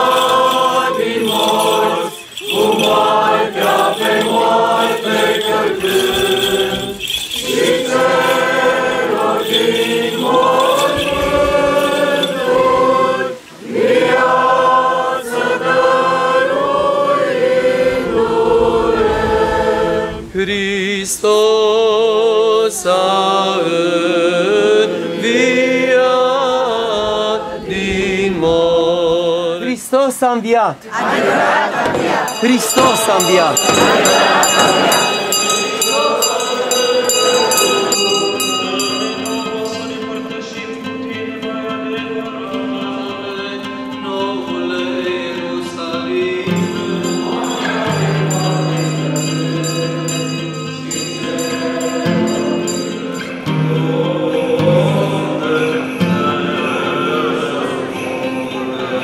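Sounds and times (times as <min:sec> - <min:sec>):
church bells pealing: 0:00.0 - 0:12.7, 0:32.0 - 0:40.4, 0:46.5 - 0:55.2
choir chanting long notes: 0:00.0 - 0:20.3, 0:22.8 - 0:28.6, 0:30.9 - 0:59.0.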